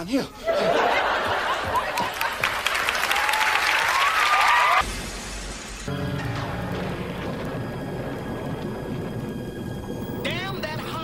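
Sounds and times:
low rumbling: 4.8s - 11.0s.

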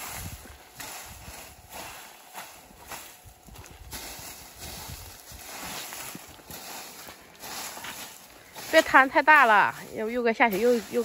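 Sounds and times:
light knocks of pods and rake: 0.0s - 11.0s
rake scraping through dry pods: 0.0s - 11.0s.

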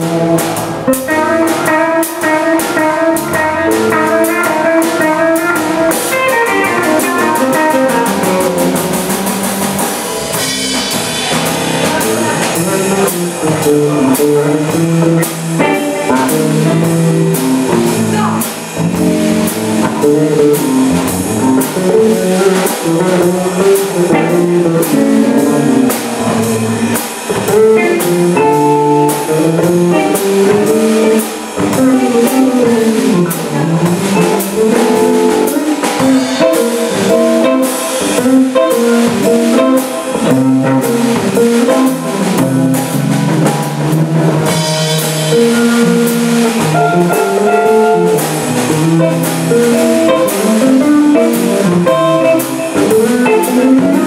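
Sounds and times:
drum beat: 0.0s - 54.0s
electric bass line: 0.0s - 54.0s
electric guitar: 0.0s - 54.0s.

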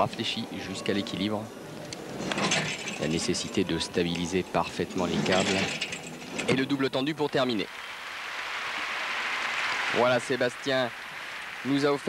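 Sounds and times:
crowd applauding: 7.3s - 12.0s.

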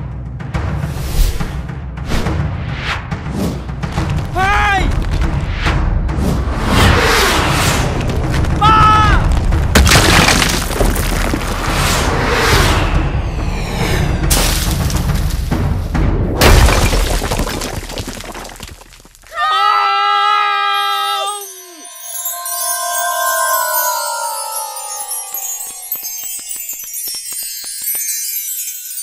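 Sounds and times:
rock shattering: 8.0s - 11.7s, 14.3s - 15.6s, 16.4s - 19.3s
low rumble: 11.1s - 16.4s
dramatic music: 11.4s - 16.4s, 21.5s - 26.6s.

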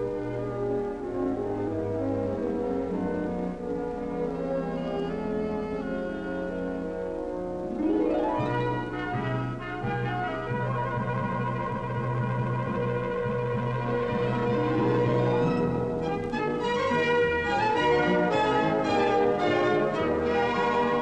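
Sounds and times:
orchestral film score: 0.0s - 21.0s.

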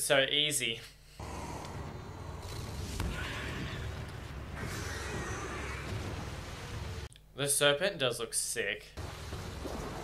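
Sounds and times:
steady low rumble: 1.2s - 7.1s
cartoon sea serpent screeching: 4.6s - 5.9s.

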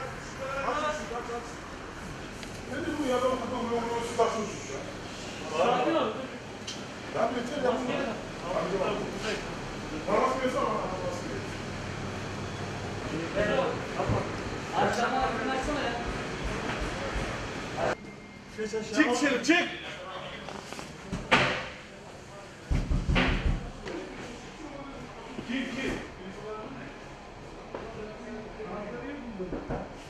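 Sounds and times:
people talking in large room: 0.0s - 30.0s.

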